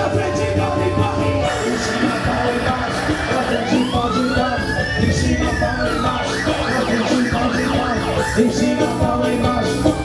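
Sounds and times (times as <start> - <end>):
siren-like sweeping tone: 0.0 - 8.6
live band music: 0.0 - 10.0.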